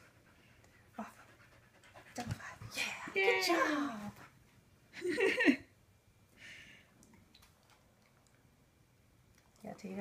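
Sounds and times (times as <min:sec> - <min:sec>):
dog panting: 0:00.0 - 0:02.9.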